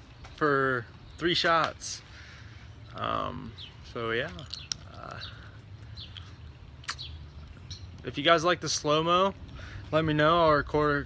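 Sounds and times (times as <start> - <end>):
bird chirp: 0.0 - 11.0
steady low rumble: 0.0 - 11.0.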